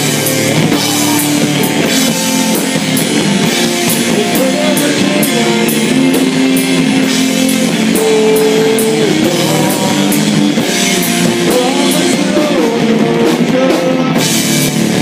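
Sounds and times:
drum kit with cymbals: 0:00.0 - 0:15.0
electric guitar: 0:00.0 - 0:15.0
man singing: 0:00.4 - 0:02.6, 0:03.8 - 0:14.5.

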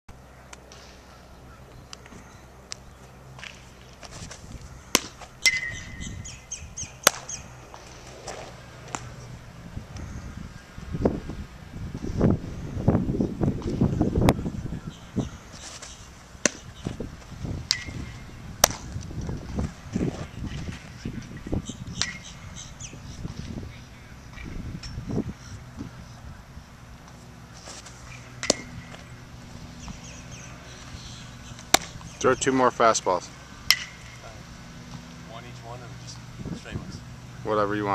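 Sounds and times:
bird chirping: 0:00.2 - 0:07.7, 0:14.3 - 0:17.0, 0:20.3 - 0:26.5, 0:28.0 - 0:32.6
ball smacking into glove: 0:04.9 - 0:05.7, 0:18.6 - 0:19.1, 0:27.1 - 0:29.0, 0:31.6 - 0:32.0
baseball smacking into mitt: 0:04.9 - 0:05.7, 0:07.0 - 0:09.1, 0:15.8 - 0:17.0, 0:17.6 - 0:20.9, 0:27.0 - 0:29.0, 0:31.6 - 0:32.1.

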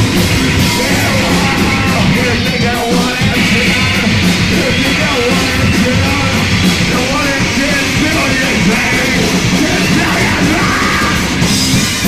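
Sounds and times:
heavy band playing distorted music: 0:00.0 - 0:12.0
person yelling vocals: 0:00.7 - 0:04.0, 0:07.0 - 0:11.3.

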